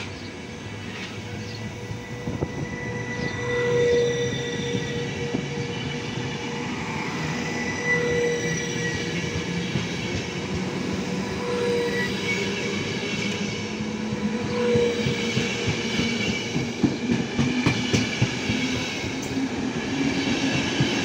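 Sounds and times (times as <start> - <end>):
train wheels rumbling on rails: 0.0 - 21.0
metallic wheel squeal: 1.2 - 9.8, 11.2 - 13.5.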